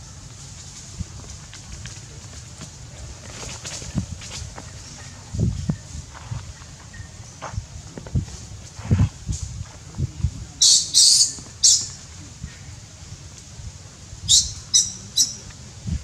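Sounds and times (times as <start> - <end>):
baby monkey squealing: 10.6 - 11.9.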